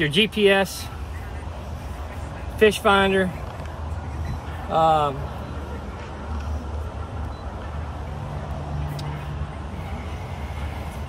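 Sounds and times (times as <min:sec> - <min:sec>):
low vehicle rumble: 0:00.7 - 0:11.0.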